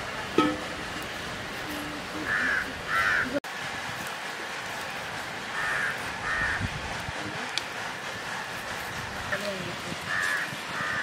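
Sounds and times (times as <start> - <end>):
outdoor background noise: 0.0 - 11.0
crow cawing: 2.2 - 3.4, 5.6 - 6.7, 10.1 - 11.0.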